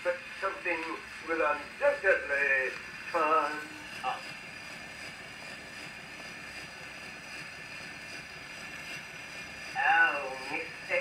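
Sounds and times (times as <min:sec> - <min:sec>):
gramophone record hiss: 0:00.0 - 0:11.0.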